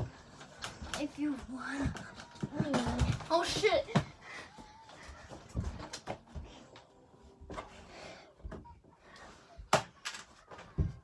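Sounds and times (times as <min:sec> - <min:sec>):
thuds and knocks of climbing: 0:10.6 - 0:11.0.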